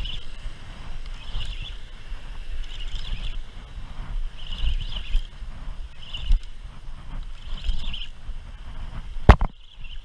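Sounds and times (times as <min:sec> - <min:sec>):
fishing reel whirring: 0:00.0 - 0:03.6, 0:04.3 - 0:06.6, 0:07.3 - 0:08.2
wind: 0:00.0 - 0:10.0.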